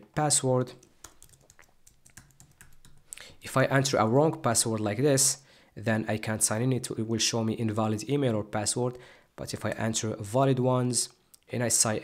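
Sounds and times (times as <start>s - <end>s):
typing on computer keyboard: 0.8s - 3.1s.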